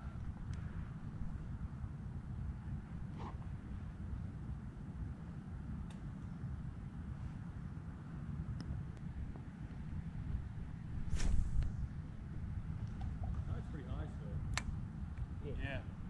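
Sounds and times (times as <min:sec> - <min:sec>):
wind rumbling on microphone: 0:00.0 - 0:16.0
microphone handling rustle: 0:11.0 - 0:11.9.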